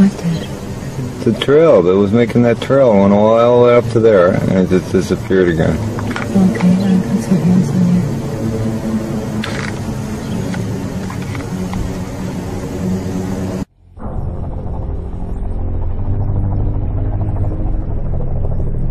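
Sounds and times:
deep droning hum: 0:00.0 - 0:18.9
music with sustained low tones: 0:00.0 - 0:18.9.

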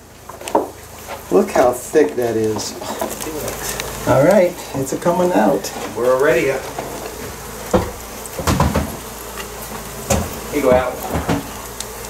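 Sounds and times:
knocks and scrapes: 0:05.6 - 0:11.6.

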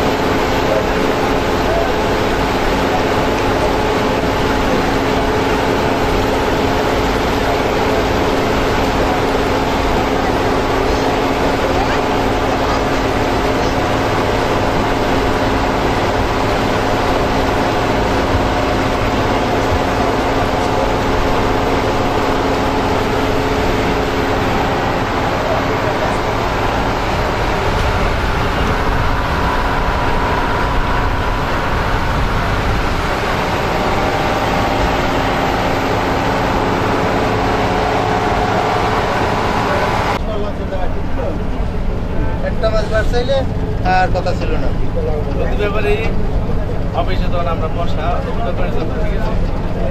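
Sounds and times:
boat engine droning: 0:00.0 - 0:49.9
voices: 0:00.0 - 0:49.9.

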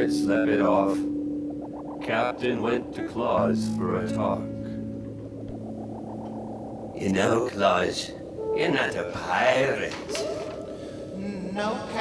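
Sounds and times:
low synthesizer drone: 0:00.0 - 0:12.0
rapidly pulsing tone: 0:00.0 - 0:12.0.

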